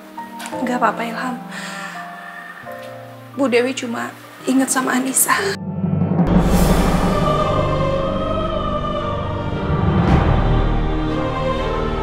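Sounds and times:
sustained instruments: 0:05.3 - 0:12.0
choral voices: 0:06.3 - 0:12.0.

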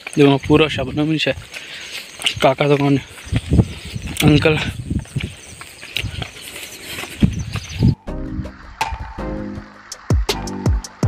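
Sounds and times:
wind gusts buffeting microphone: 0:00.2 - 0:01.6, 0:02.2 - 0:09.2
wind on microphone: 0:03.2 - 0:09.2.

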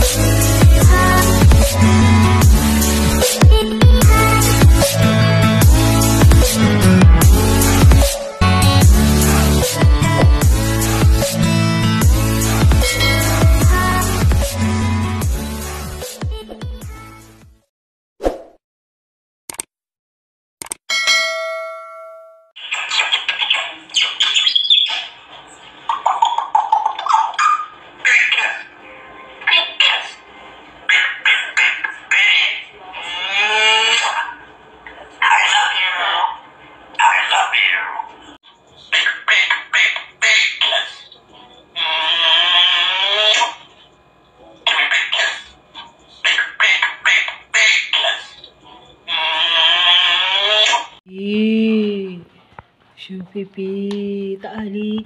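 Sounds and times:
bell-like ding: 0:20.9 - 0:22.6
parrot squawking and whistling: 0:22.6 - 0:25.2, 0:25.9 - 0:28.7
parrot calls: 0:22.6 - 0:25.3, 0:25.9 - 0:28.8, 0:30.9 - 0:34.4, 0:37.0 - 0:38.2, 0:38.9 - 0:41.2, 0:44.7 - 0:45.6, 0:46.2 - 0:51.0.

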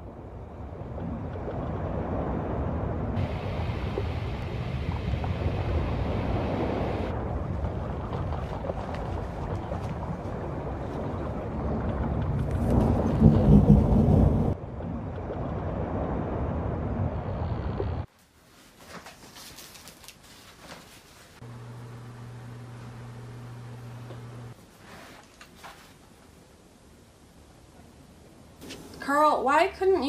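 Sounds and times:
rushing wind: 0:00.0 - 0:18.1
thunder rumble: 0:00.0 - 0:18.1
water noise: 0:00.0 - 0:18.1, 0:21.4 - 0:24.6.

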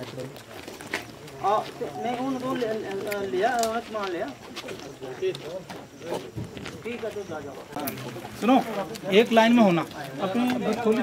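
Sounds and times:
indistinct voices talking: 0:01.2 - 0:09.0.

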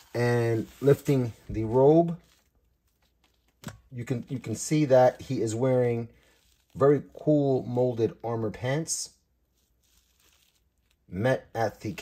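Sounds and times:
faint fabric rustling: 0:00.0 - 0:07.3, 0:09.4 - 0:12.0.

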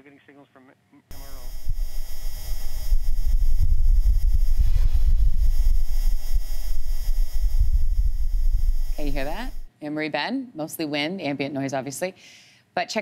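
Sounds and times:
low wind rumble: 0:01.1 - 0:09.7.

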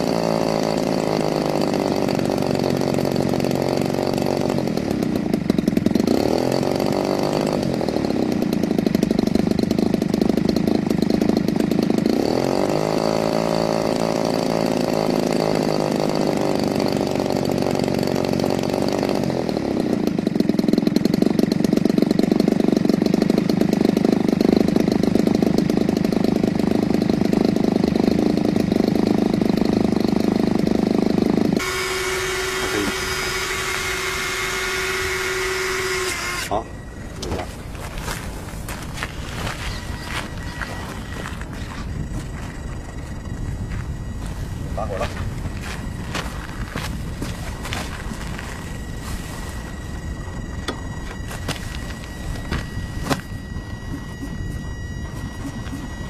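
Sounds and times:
model airplane engine revving: 0:00.0 - 0:56.0.

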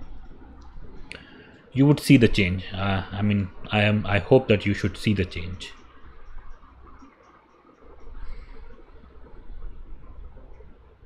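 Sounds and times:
faint small ticks: 0:00.0 - 0:01.6, 0:05.8 - 0:11.0
background hum: 0:00.0 - 0:11.0.

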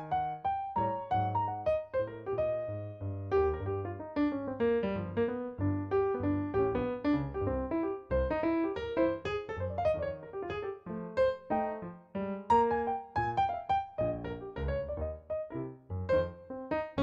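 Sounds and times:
piano played fast: 0:00.0 - 0:17.0.

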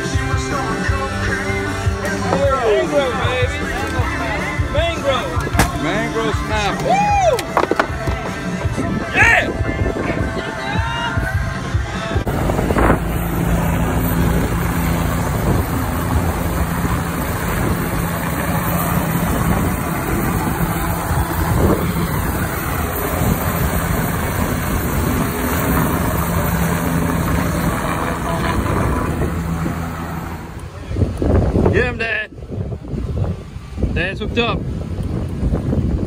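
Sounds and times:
helicopter rotor and engine: 0:01.9 - 0:06.9, 0:11.6 - 0:31.8.

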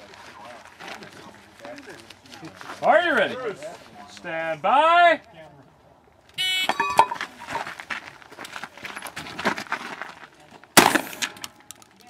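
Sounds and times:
loud gunshot: 0:10.8 - 0:11.4.

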